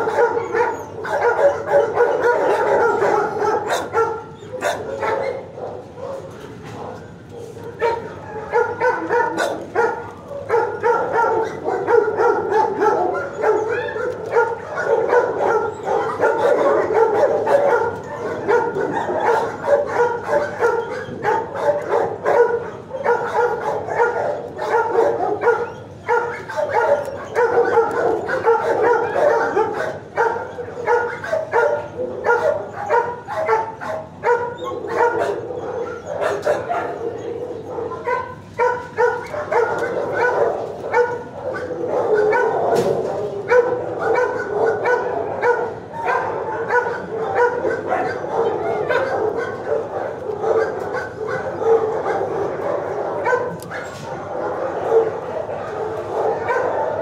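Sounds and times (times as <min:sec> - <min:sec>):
dogs barking and yipping: 0:00.0 - 0:57.0.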